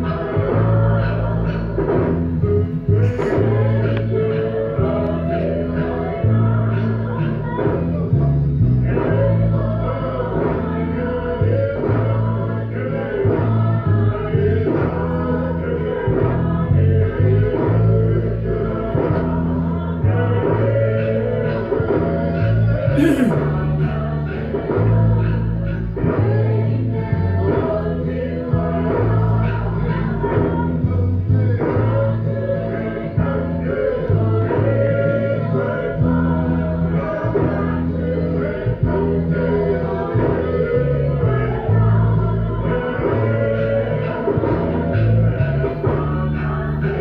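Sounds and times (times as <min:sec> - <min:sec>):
group singing over music: 0:00.0 - 0:47.0.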